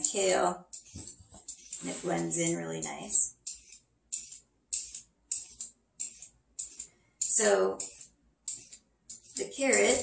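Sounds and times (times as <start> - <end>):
peeler scraping carrot: 0.0 - 10.0.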